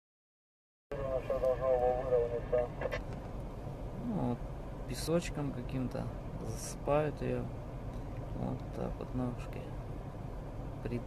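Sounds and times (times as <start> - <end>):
low rumble inside a car: 0.9 - 11.0.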